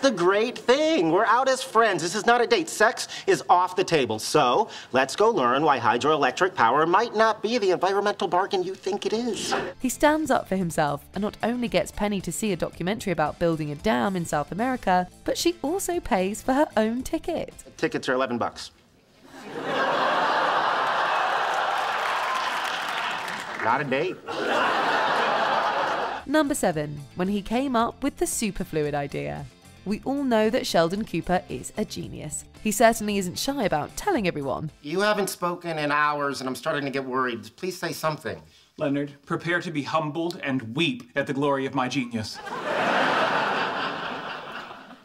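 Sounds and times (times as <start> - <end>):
audience laughing: 19.3 - 23.6, 24.2 - 26.2, 42.4 - 45.0
audience applauding: 19.6 - 26.2.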